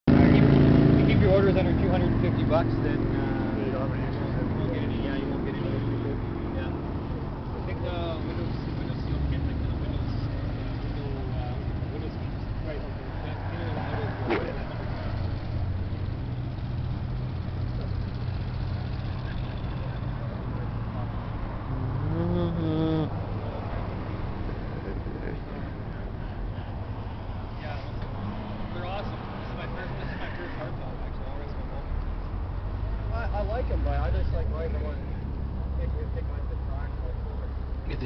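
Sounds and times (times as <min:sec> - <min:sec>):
man talking: 0:01.0 - 0:06.9, 0:33.2 - 0:38.0
faint voices: 0:17.3 - 0:38.0.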